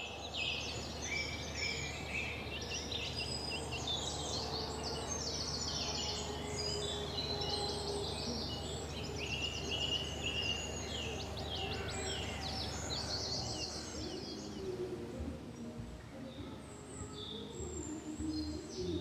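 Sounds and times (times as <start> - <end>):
songbirds singing: 0.0 - 19.0.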